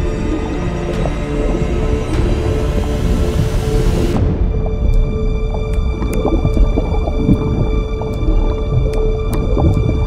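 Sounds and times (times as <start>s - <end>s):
muffled underwater ambience: 0.0s - 10.0s
suspenseful drama score: 0.0s - 10.0s.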